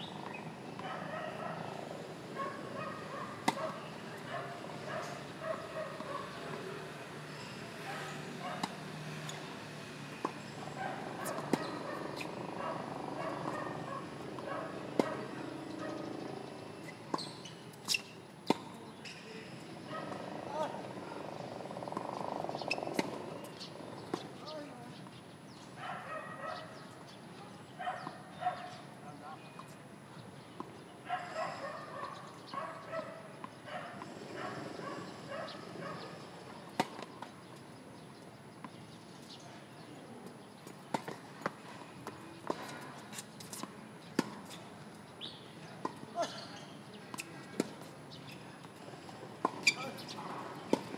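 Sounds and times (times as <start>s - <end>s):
tennis balls struck by rackets: 2.6s - 4.0s, 8.5s - 9.5s, 10.2s - 16.5s, 17.9s - 19.2s, 21.7s - 24.4s, 40.7s - 44.6s, 45.8s - 47.9s, 48.6s - 50.9s.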